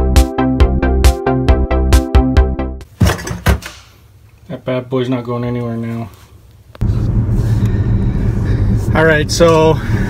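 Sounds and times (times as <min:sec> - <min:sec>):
road noise inside car: 0:06.6 - 0:10.0.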